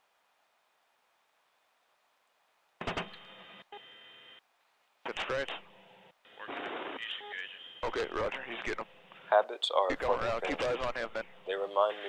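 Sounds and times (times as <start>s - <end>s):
radio hiss with hum: 5.0s - 12.0s.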